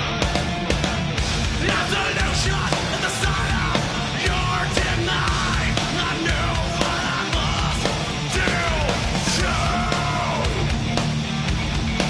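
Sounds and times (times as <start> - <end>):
distorted guitars: 0.0 - 12.0
shouted lead vocals: 0.0 - 12.0.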